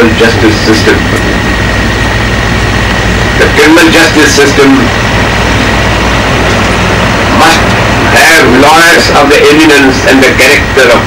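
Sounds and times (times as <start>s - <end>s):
low hum and hiss: 0.0s - 11.0s
thin high whine: 0.0s - 11.0s.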